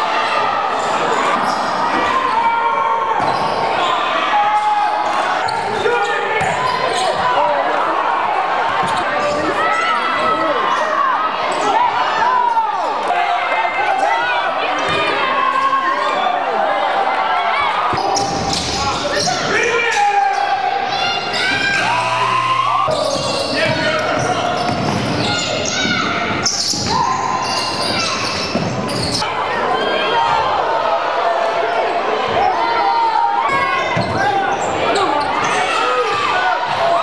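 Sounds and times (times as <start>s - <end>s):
people calling out: 0.8s - 37.0s
buzzing tone: 21.6s - 22.9s
sneakers squeaking on hardwood: 22.8s - 29.2s, 33.8s - 35.6s.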